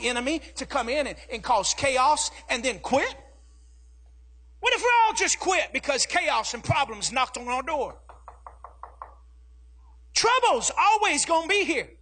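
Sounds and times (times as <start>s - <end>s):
hand knocking on wood: 8.0s - 9.2s.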